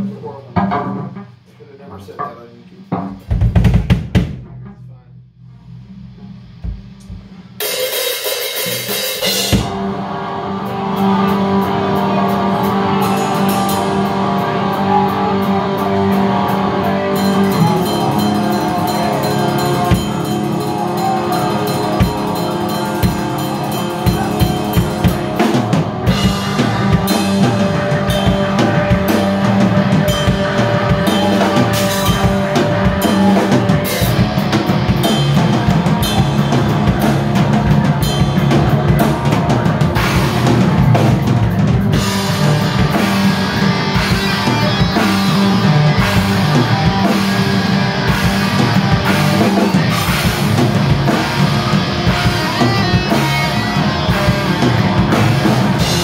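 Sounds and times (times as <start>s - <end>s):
band playing loudly: 0.0s - 56.0s
drum kit: 0.0s - 56.0s
amplified electric guitars: 5.7s - 56.0s.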